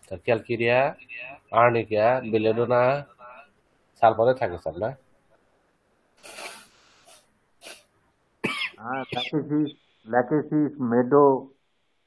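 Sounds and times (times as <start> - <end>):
person coughing and clearing throat: 8.4 - 9.6.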